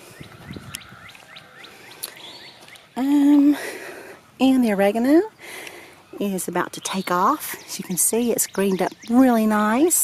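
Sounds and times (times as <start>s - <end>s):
bird chirping rapidly: 6.7s - 9.7s.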